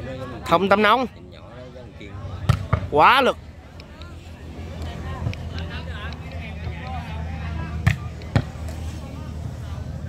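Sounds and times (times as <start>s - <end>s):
low crowd chatter: 0.0s - 10.0s.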